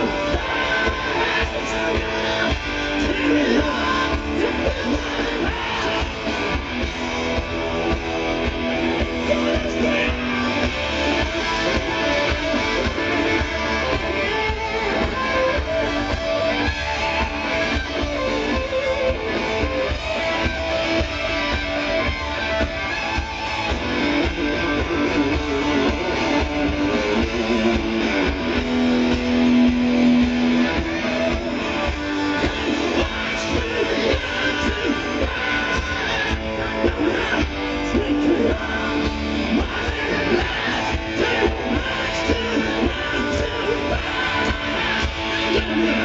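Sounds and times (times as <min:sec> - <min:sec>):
distorted electric guitars: 0:00.0 - 0:46.0
hard rock band playing live: 0:00.0 - 0:46.0
steady drum beat: 0:00.0 - 0:46.0.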